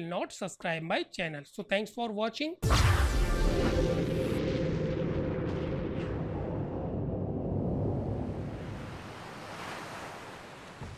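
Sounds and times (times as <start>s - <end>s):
deep rumble: 2.6s - 8.9s.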